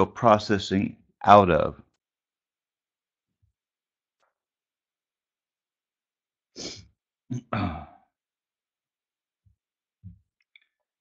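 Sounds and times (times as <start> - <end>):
man inhaling sharply: 6.6 - 6.8
man sighing: 6.6 - 8.0.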